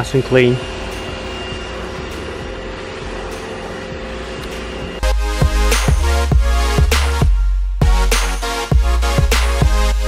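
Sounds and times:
machine humming: 0:00.0 - 0:10.0.

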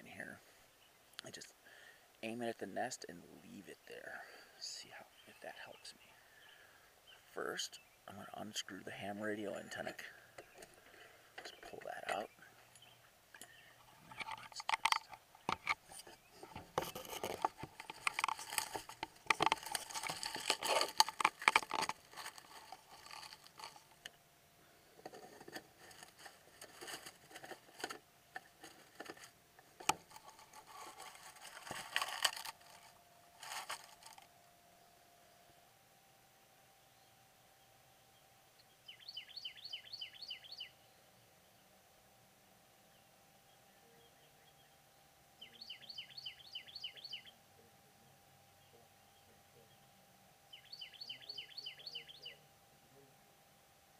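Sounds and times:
nestlings begging chirps: 0:04.0 - 0:24.0, 0:38.7 - 0:40.8, 0:45.4 - 0:47.4, 0:50.5 - 0:52.4
camera handling knocks and scrapes: 0:14.1 - 0:24.0, 0:25.0 - 0:32.9.

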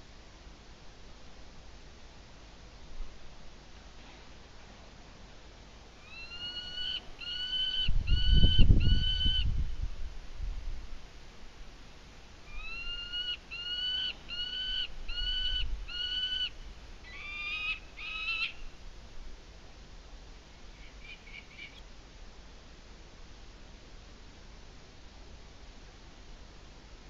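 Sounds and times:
animal calling: 0:06.0 - 0:09.4, 0:12.5 - 0:18.6.

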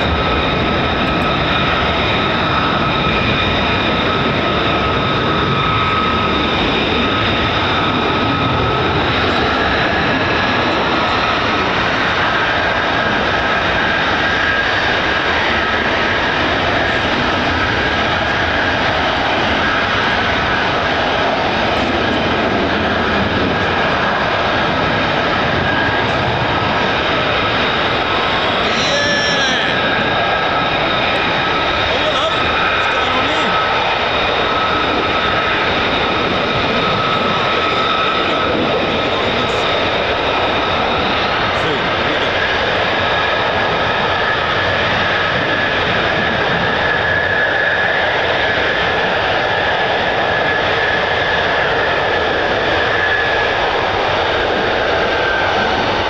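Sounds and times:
fighter jet roar: 0:00.0 - 0:56.0.

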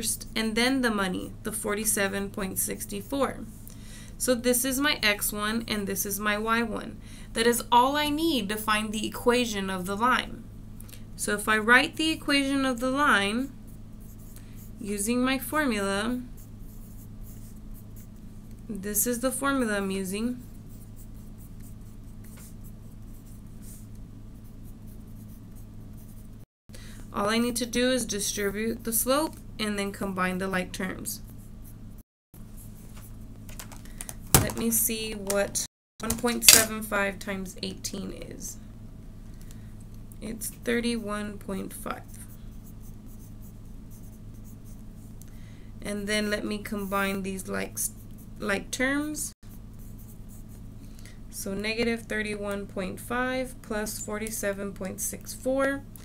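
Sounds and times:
steady low hum: 0:00.0 - 0:56.0
pen scratching on paper: 0:16.4 - 0:18.2, 0:20.4 - 0:26.3, 0:42.6 - 0:45.1.

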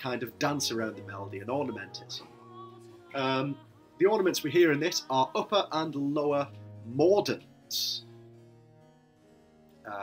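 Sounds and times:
harpsichord background music: 0:00.0 - 0:10.0.

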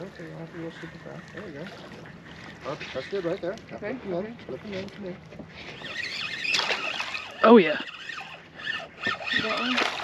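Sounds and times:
fishing reel cranking: 0:05.7 - 0:10.0.

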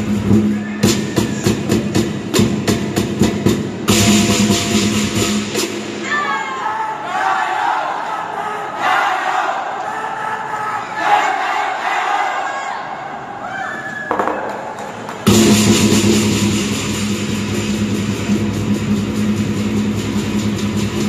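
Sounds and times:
drum beating: 0:00.0 - 0:05.8, 0:14.1 - 0:21.0
crowd cheering and shouting: 0:06.0 - 0:15.3
crashing cymbals: 0:15.3 - 0:21.0.

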